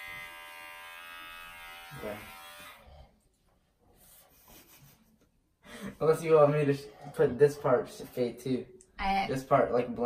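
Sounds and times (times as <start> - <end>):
electric hair clippers buzzing: 0.0 - 2.8.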